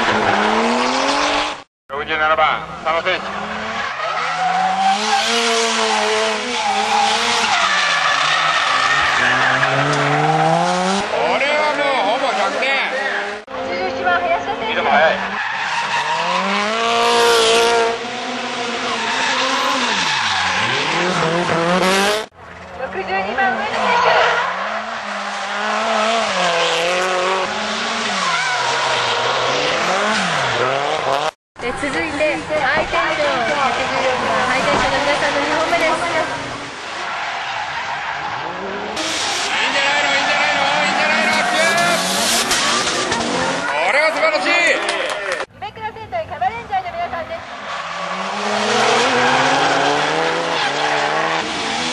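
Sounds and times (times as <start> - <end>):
car engine rising and falling: 2.6 - 13.7, 15.4 - 31.4, 32.3 - 43.9, 47.4 - 51.9
tyres squealing: 37.0 - 44.7.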